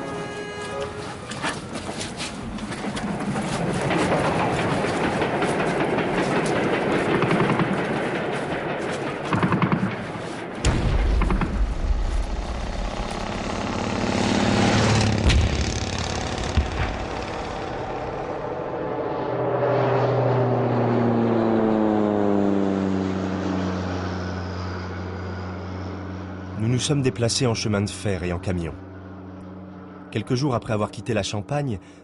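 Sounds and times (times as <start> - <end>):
vehicle engine humming: 0.0 - 32.0
sharp gunshots: 9.3 - 13.7.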